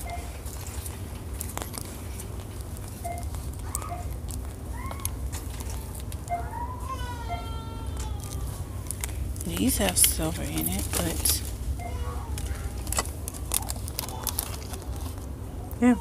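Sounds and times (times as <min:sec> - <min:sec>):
small clicks and rustles: 0:00.0 - 0:07.0, 0:07.9 - 0:15.8
steady low hum: 0:00.0 - 0:16.0.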